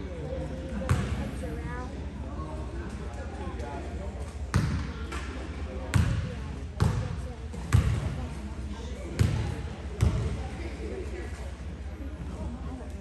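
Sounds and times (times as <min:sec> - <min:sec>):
murmur of voices: 0:00.0 - 0:13.0
basketball bouncing on hardwood: 0:07.7 - 0:08.0.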